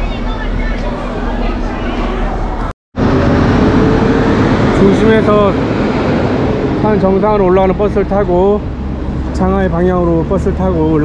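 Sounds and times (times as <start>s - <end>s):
background chatter: 0.0s - 2.7s.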